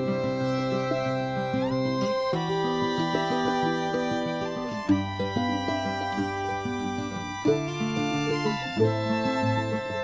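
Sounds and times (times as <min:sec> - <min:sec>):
melodic instrumental music: 0:00.0 - 0:10.0.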